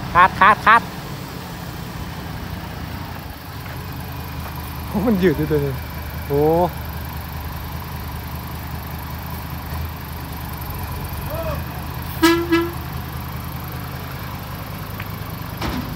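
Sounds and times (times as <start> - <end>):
diesel truck engine running: 0.0 - 15.9
truck horn toot: 11.2 - 13.1.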